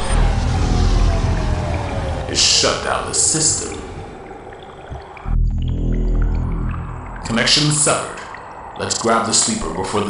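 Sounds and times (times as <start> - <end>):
deep boom with low drone: 0.0 - 4.2, 4.9 - 8.1.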